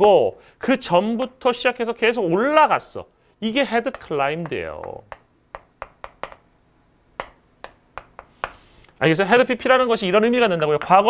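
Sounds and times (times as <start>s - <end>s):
chalk clicking on chalkboard: 3.8s - 6.5s, 7.2s - 8.7s.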